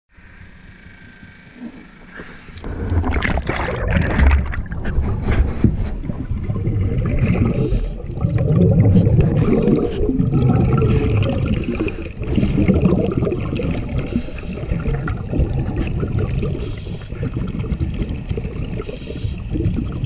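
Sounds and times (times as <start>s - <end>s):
underwater bubbling and gurgling: 1.2s - 20.0s.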